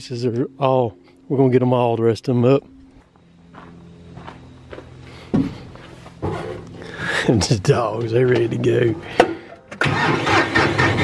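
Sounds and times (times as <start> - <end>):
footsteps: 2.8 - 7.2
tractor engine idling: 2.9 - 11.0.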